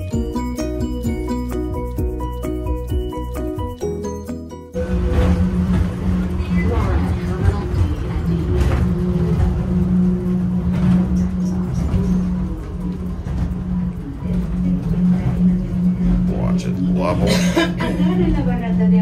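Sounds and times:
people mover car humming: 4.8s - 19.0s.

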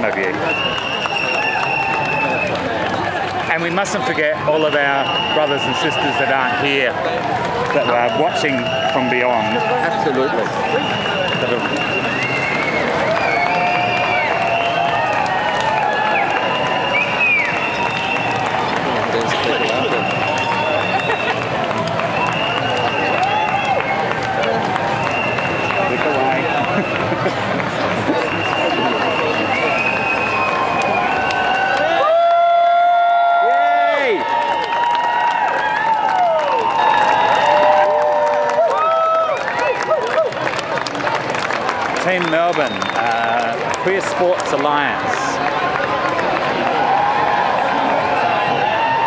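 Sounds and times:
crowd chattering: 0.0s - 32.1s, 39.3s - 49.0s
high steady whistle tone: 0.4s - 2.5s, 4.9s - 6.5s, 10.6s - 14.9s, 16.2s - 18.4s, 19.4s - 21.3s, 22.1s - 23.9s, 25.0s - 27.0s, 28.2s - 31.8s.

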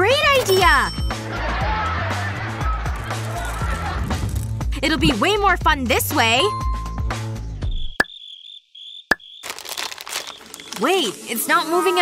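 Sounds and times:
candies pouring into plastic dispenser: 9.4s - 11.3s.

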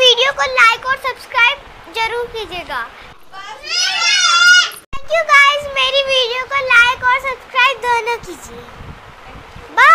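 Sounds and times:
girl squealing: 3.5s - 4.8s.

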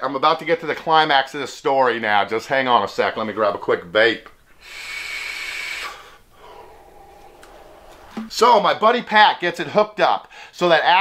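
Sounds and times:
airy hissing vape inhale: 4.5s - 8.3s
vapour exhale: 4.5s - 8.3s.

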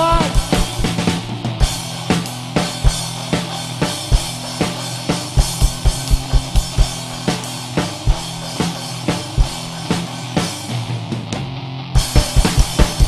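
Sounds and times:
rock band playing: 0.0s - 13.0s
kick drum beats: 5.4s - 7.1s.

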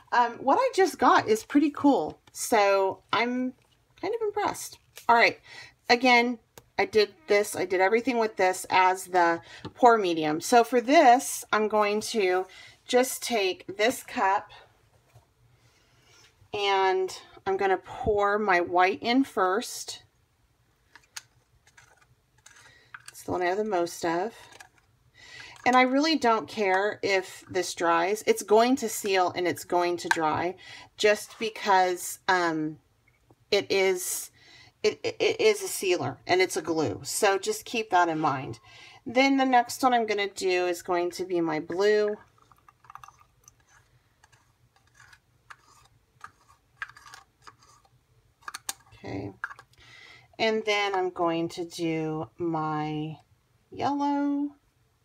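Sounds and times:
stir stick scraping plastic cup: 21.6s - 23.7s, 41.7s - 49.8s.

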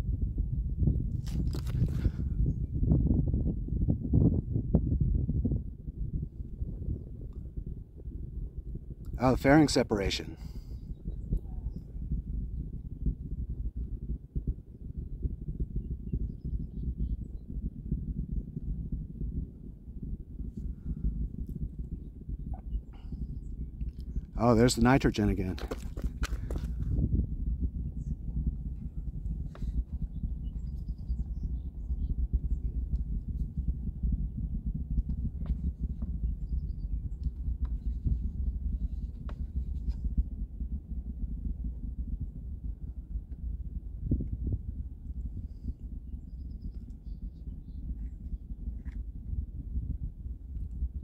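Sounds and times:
uneven low rumble: 0.0s - 51.0s.

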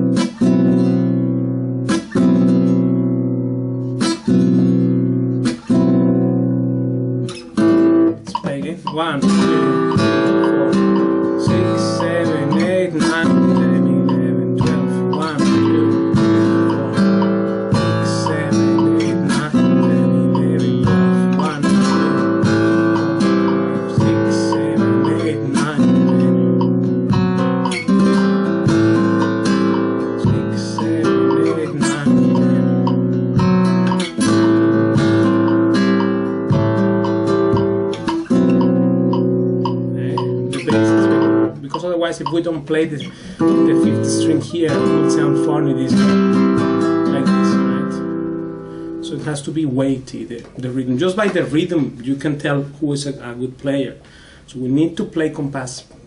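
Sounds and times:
flamenco guitar strumming: 0.0s - 56.0s
percussive strokes across guitar strings: 3.8s - 49.1s.

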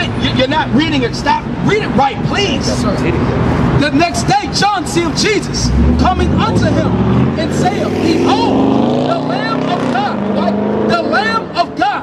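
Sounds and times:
vehicle engine passing: 2.5s - 11.8s.

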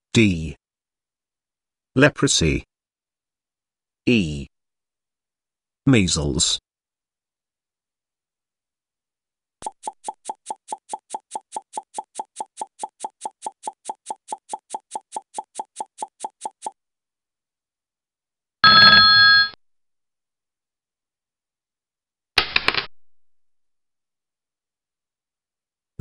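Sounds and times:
bright ringing tone: 18.6s - 19.6s.

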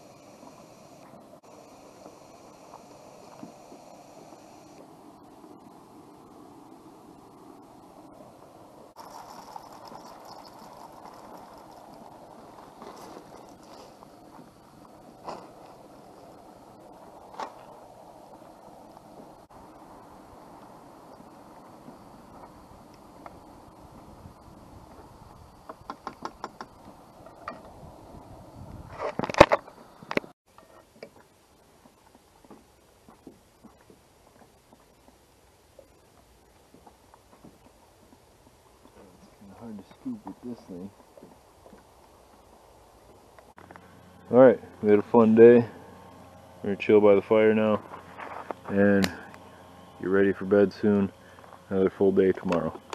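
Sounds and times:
camp stove burner running: 0.0s - 32.2s, 33.4s - 52.9s.

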